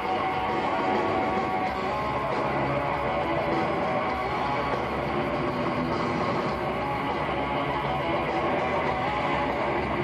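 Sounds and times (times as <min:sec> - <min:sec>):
live heavy metal band: 0:00.0 - 0:10.0.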